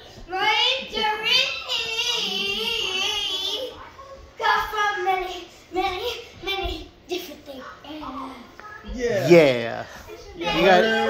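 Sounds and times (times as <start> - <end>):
girl singing in a high voice: 0.2 - 3.8.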